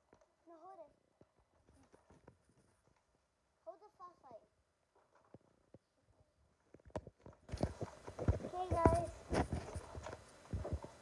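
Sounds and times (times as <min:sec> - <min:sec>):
irregular knocks and thumps: 0:06.7 - 0:11.0.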